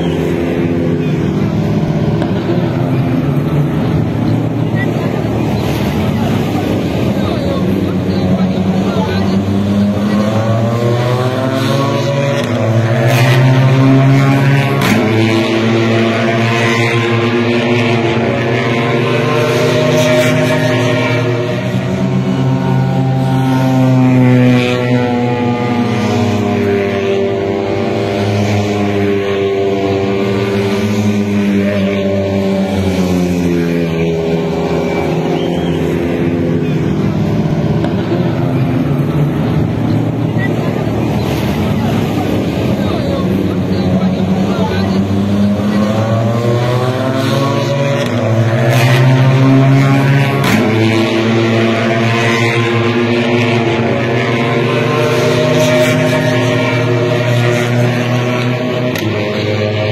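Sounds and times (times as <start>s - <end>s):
vehicle engines droning: 0.0s - 59.9s.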